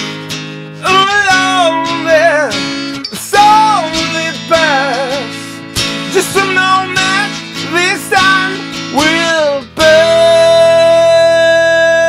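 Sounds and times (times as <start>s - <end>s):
strummed acoustic guitar: 0.0s - 12.0s
man singing: 0.7s - 12.0s.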